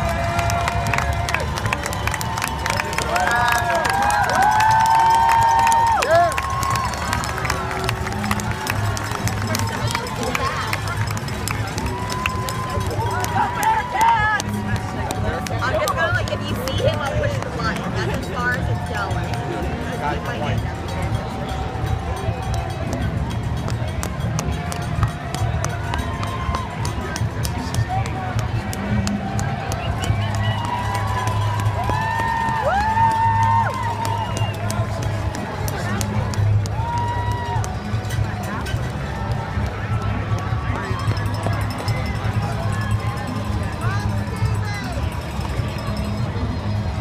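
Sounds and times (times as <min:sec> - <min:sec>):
spectators whooping and cheering: 0:00.0 - 0:11.1, 0:11.7 - 0:16.2, 0:25.5 - 0:27.2, 0:29.0 - 0:38.2
crowd voices: 0:00.0 - 0:47.0
runners' footsteps on pavement: 0:00.0 - 0:47.0
long high cheer or whistle: 0:01.7 - 0:07.1, 0:29.8 - 0:34.8.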